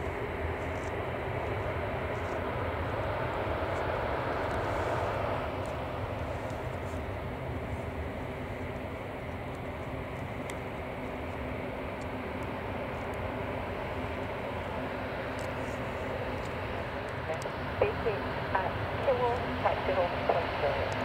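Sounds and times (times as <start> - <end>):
jet engines taxiing: 0.0 - 21.0.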